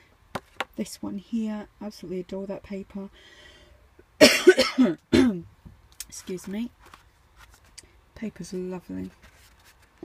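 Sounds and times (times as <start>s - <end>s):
woman coughing: 4.2s - 5.4s.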